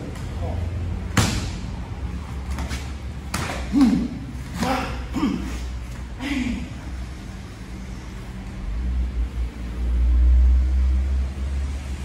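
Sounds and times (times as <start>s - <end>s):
sharp slap on a mat: 1.1s - 1.7s, 2.6s - 4.0s.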